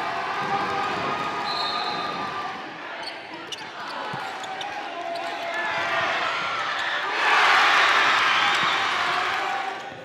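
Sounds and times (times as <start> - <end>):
voices of players and crowd: 0.0 - 10.0.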